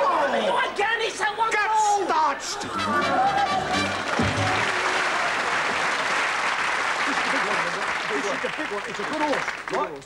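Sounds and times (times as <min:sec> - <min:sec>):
audience laughing: 0:02.6 - 0:04.8, 0:07.0 - 0:09.1
audience applauding: 0:02.7 - 0:10.0.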